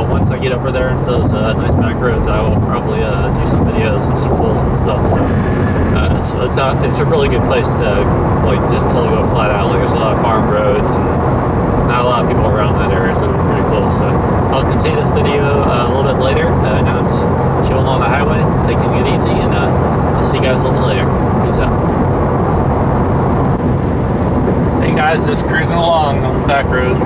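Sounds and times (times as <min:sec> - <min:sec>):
indistinct voices: 0:00.0 - 0:11.2, 0:11.9 - 0:21.9, 0:24.8 - 0:27.0
car engine and tyres drone: 0:00.0 - 0:27.0.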